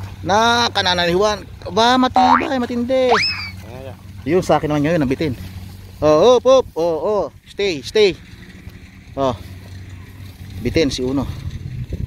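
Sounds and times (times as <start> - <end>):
man calling wordlessly: 2.0 - 3.6
upward-sliding whoops: 3.1 - 3.6.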